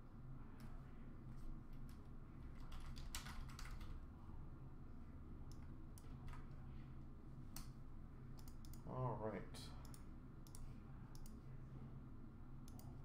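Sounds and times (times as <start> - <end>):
computer keyboard typing: 1.9 - 4.0.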